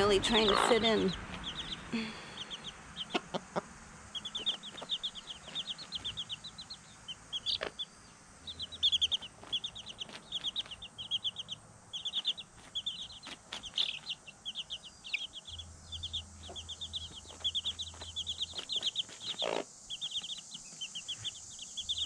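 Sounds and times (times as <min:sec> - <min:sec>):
chicks peeping: 0:00.0 - 0:22.0.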